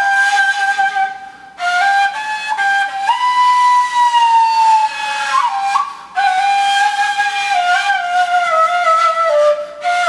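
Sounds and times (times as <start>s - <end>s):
breathy flute held notes: 0.0s - 10.0s.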